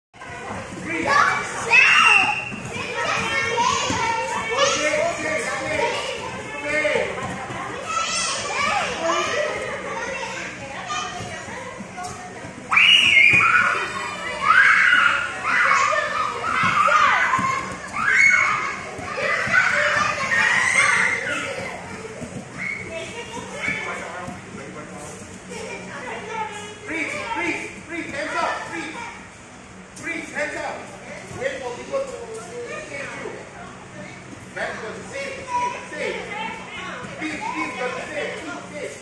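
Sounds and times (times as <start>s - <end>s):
children shouting and chattering: 0.2s - 39.0s
young children shouting: 12.7s - 21.7s.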